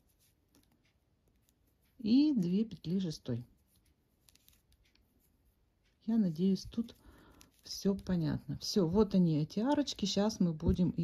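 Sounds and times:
crochet hook ticking and rustling: 0:00.0 - 0:11.0.

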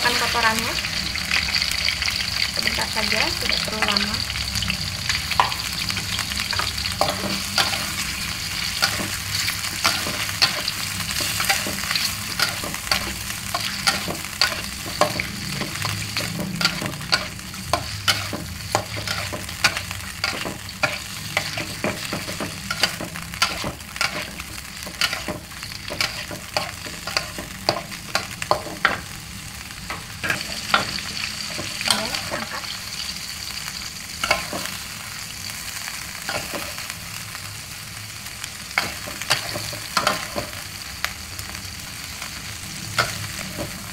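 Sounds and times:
squid sizzling in wok: 0:00.0 - 0:43.9.

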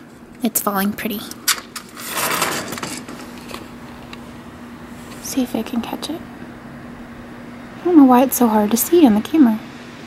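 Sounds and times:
faint steady hum: 0:00.0 - 0:10.0
sliding screen door scraping: 0:01.5 - 0:03.7.

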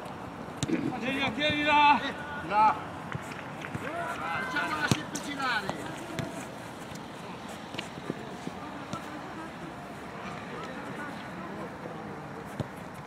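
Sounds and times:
outdoor background noise: 0:00.0 - 0:13.0
footballers shouting: 0:00.9 - 0:12.2.

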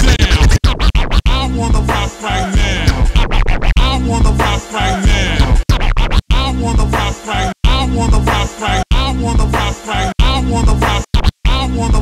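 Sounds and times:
hip-hop beat: 0:00.0 - 0:12.0
record scratching on a turntable: 0:00.0 - 0:12.0.

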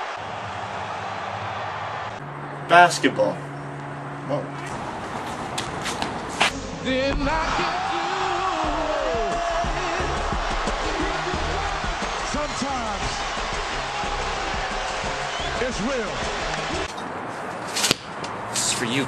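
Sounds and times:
crowd roar with shouting: 0:00.0 - 0:02.7, 0:06.6 - 0:16.9.

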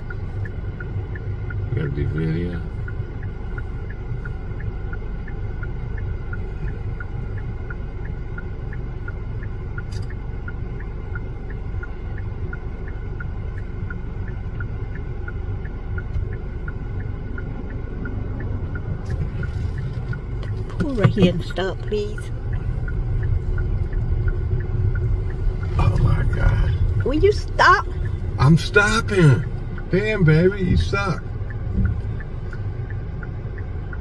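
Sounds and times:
car indicator ticking: 0:00.0 - 0:34.0
low rumble inside car cabin: 0:00.0 - 0:34.0.

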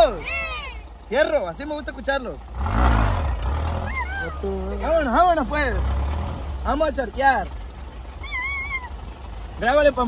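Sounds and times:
dune buggy engine rumbling: 0:00.0 - 0:10.0.

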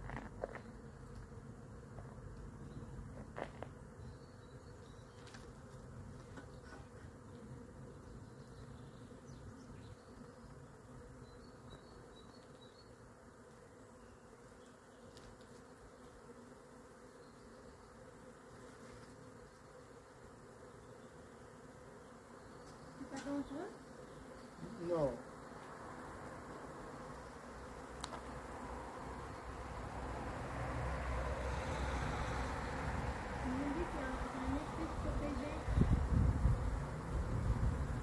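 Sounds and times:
swarm of bees buzzing: 0:00.0 - 0:38.0.

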